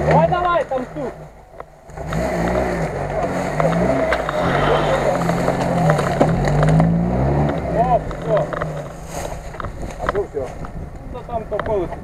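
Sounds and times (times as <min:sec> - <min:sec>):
engine revving under load: 0:01.9 - 0:09.4
tyres churning in mud: 0:02.0 - 0:10.5.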